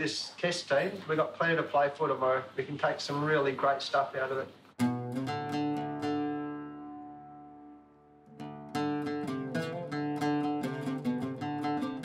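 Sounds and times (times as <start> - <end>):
plucked guitar music: 4.8 - 12.0.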